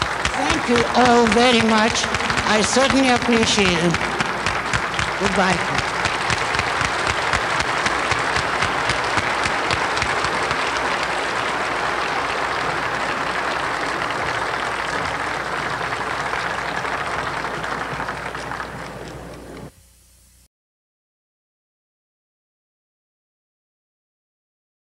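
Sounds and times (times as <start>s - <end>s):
audience applauding: 0.0s - 19.7s.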